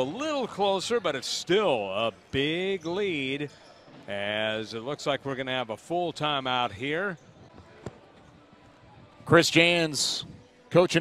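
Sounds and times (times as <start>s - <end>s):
quiet arena background: 0.0s - 11.0s.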